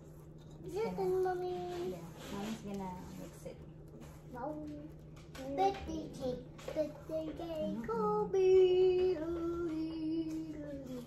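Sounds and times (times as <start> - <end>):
child singing wordlessly: 4.4 - 11.0.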